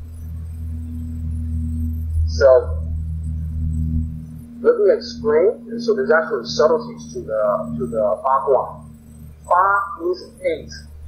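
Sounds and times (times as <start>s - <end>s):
steady low hum: 0.0s - 11.0s
speech: 2.3s - 2.8s, 4.6s - 8.8s, 9.5s - 10.8s.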